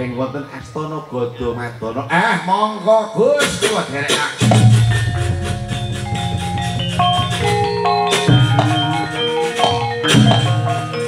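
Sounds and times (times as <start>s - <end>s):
struck bronze metallophone notes: 4.4s - 11.0s.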